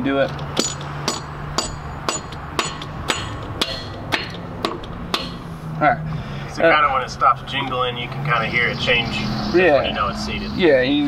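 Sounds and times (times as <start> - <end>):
mallet tapping metal injector: 0.5 - 5.5.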